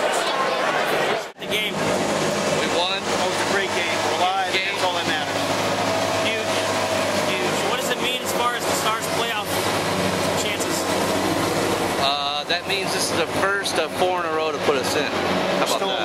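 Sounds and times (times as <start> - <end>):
indistinct talking: 0.0 - 16.0.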